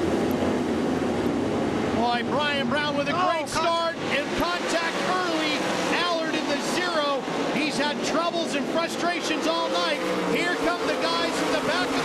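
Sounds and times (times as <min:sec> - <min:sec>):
race car engines at full throttle: 0:00.0 - 0:12.0.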